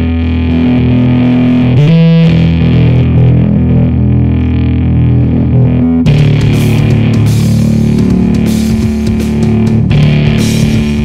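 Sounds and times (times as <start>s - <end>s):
bass guitar: 0.0s - 11.0s
distorted electric guitar riff: 0.0s - 11.0s.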